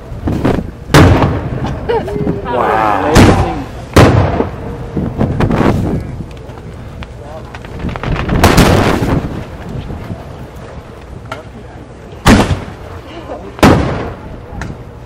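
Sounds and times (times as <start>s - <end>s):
fireworks bursting: 0.0s - 2.4s, 3.2s - 11.5s, 12.2s - 15.0s.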